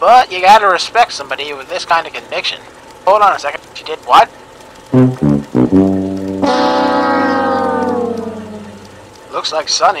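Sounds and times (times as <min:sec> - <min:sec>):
sliding trombone-like note: 0:05.0 - 0:09.0.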